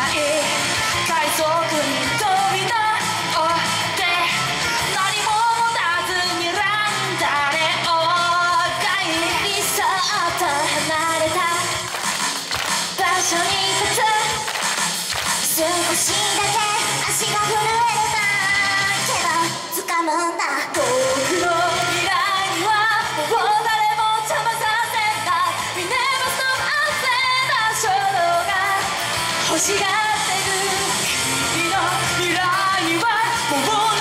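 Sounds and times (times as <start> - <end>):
women singing into microphones: 0.0 - 11.8, 13.0 - 14.5, 15.4 - 34.0
loud amplified pop music: 0.0 - 34.0.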